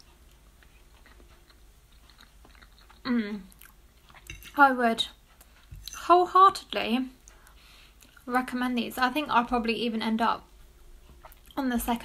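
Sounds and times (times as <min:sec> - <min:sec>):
person chewing quietly: 0:00.0 - 0:06.1, 0:07.2 - 0:08.3, 0:10.6 - 0:11.6.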